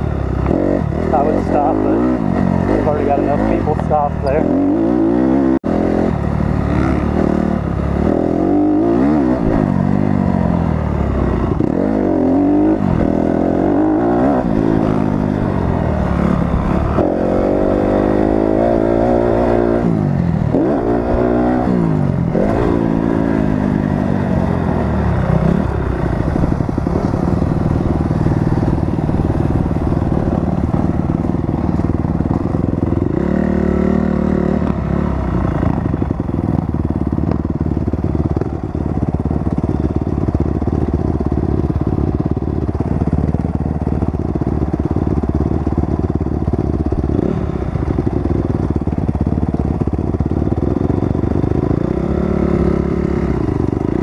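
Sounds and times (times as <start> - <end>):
dirt bike engine revving: 0.0 - 43.3, 44.2 - 54.0.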